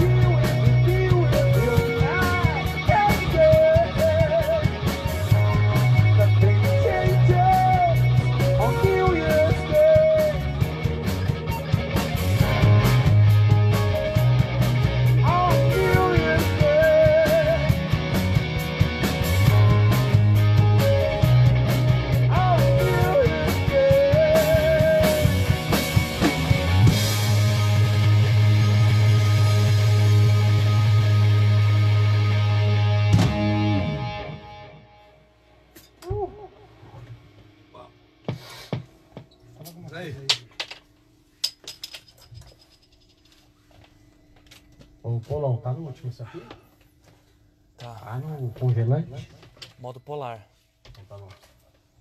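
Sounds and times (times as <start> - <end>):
rock band playing: 0.0 - 35.1.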